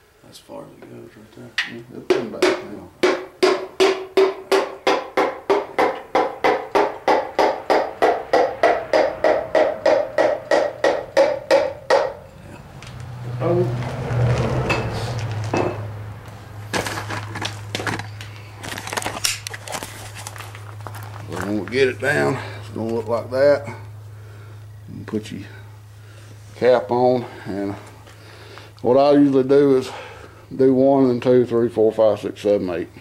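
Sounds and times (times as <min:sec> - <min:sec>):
low steady hum: 0:00.0 - 0:33.0.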